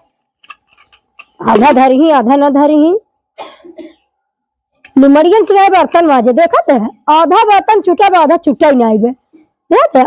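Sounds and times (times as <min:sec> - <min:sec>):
faint noisy sound: 0:00.0 - 0:10.0.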